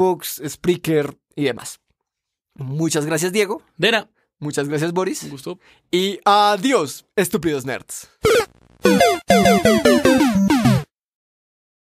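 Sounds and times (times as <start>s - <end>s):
electronic game jingle: 8.3s - 10.9s.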